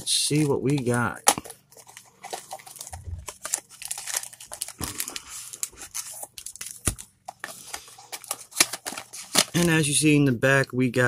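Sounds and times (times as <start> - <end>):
cardboard packaging tearing: 0.0 - 9.6.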